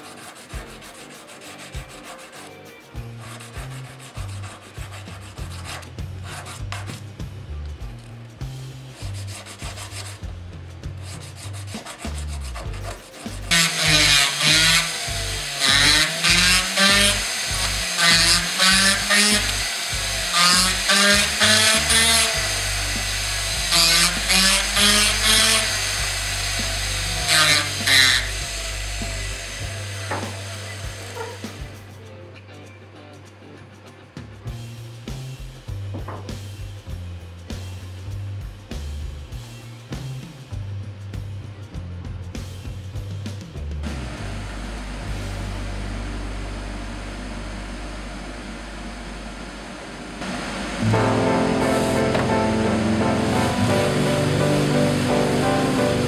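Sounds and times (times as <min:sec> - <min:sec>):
hand file rasping on metal ring: 0:00.0 - 0:05.9
background music with bass line: 0:00.2 - 0:56.0
rotary tool grinding: 0:13.0 - 0:31.7.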